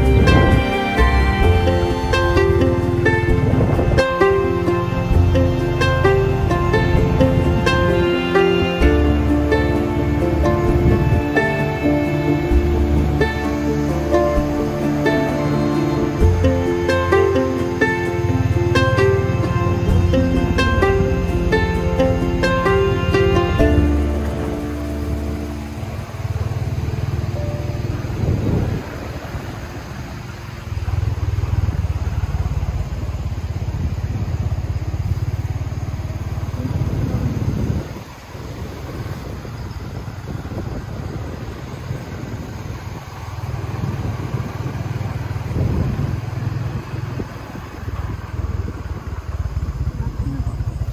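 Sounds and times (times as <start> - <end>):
fast-flowing river rushing: 0.0 - 48.4
wind buffeting microphone: 0.0 - 50.9.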